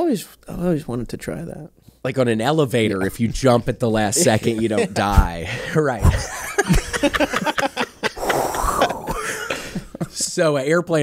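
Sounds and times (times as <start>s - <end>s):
breathy laughter: 4.2s - 10.2s.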